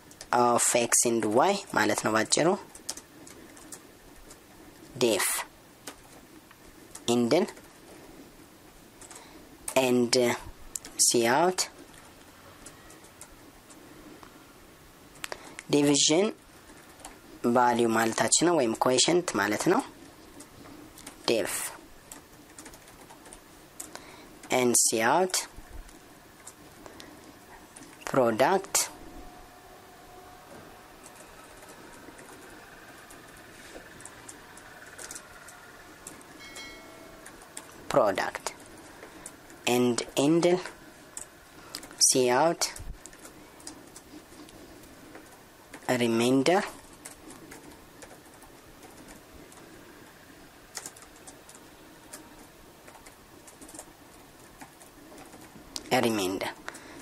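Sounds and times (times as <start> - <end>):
computer keyboard typing: 2.6 - 4.4, 9.0 - 9.8, 16.6 - 17.2, 22.0 - 24.6, 30.2 - 39.5, 43.0 - 45.9, 46.7 - 49.8, 50.7 - 55.9.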